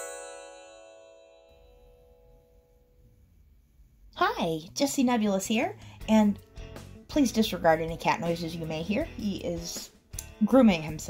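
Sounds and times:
chiming jingle: 0:00.0 - 0:02.5
faint low room hum: 0:01.7 - 0:06.4.

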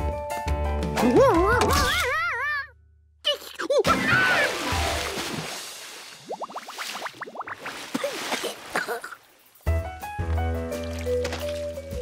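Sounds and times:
cartoon water splash: 0:03.8 - 0:08.6
water noise: 0:03.9 - 0:12.0.

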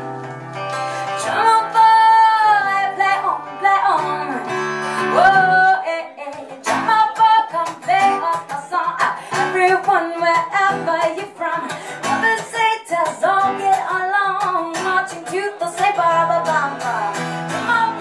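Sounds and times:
acoustic guitar: 0:00.0 - 0:18.0
woman singing: 0:01.0 - 0:18.0.

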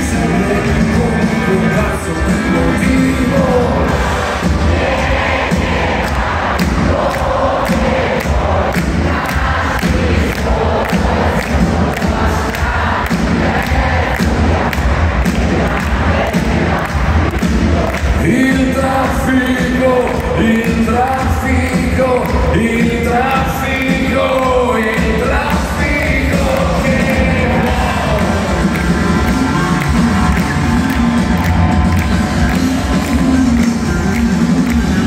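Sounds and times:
live rock band playing: 0:00.0 - 0:05.0, 0:17.6 - 0:35.0
crowd noise: 0:00.0 - 0:35.0
drum beat: 0:00.0 - 0:35.0
heavy bass: 0:00.0 - 0:35.0.

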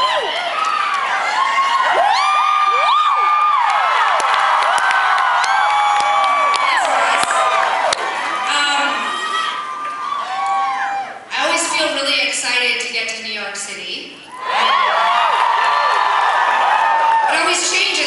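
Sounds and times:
audience cheering and screaming: 0:00.0 - 0:11.3, 0:14.3 - 0:18.0.

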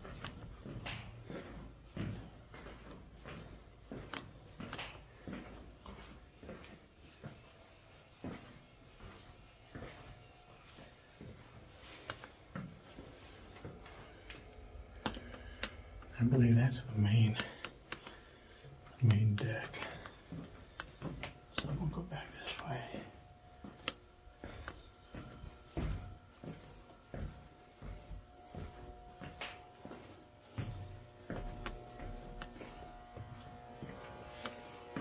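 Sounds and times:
footsteps on steel decks: 0:00.0 - 0:35.0.

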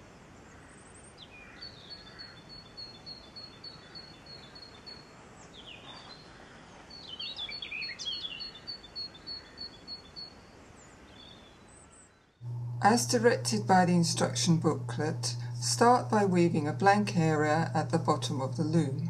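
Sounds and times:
birds singing: 0:01.0 - 0:12.4
faint steady hiss: 0:09.8 - 0:19.0.

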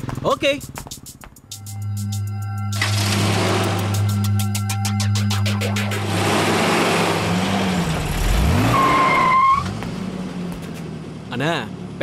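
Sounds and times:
low music drone: 0:01.5 - 0:07.3
tire squeal: 0:07.7 - 0:09.9.

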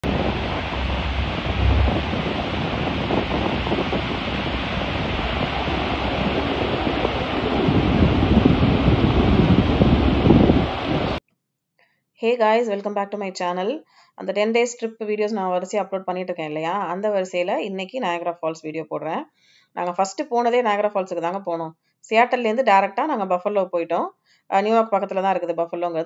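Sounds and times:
churning water: 0:00.0 - 0:11.2
waterfall roaring: 0:00.0 - 0:11.2
wind on microphone: 0:00.0 - 0:11.2.

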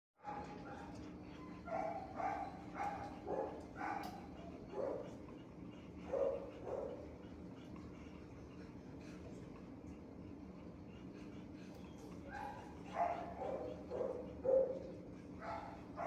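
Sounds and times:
dog barking: 0:00.2 - 0:00.9, 0:01.7 - 0:05.1, 0:06.1 - 0:07.0, 0:12.3 - 0:16.0
steady background hum: 0:00.2 - 0:16.0.

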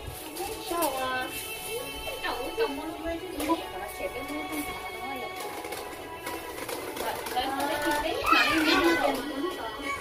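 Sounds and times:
music playing: 0:00.0 - 0:10.0
children shouting and playing: 0:07.9 - 0:10.0.

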